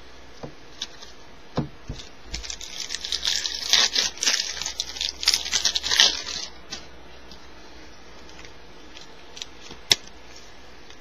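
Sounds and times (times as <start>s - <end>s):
foil wrapper crinkling: 1.9s - 7.4s, 8.2s - 11.0s.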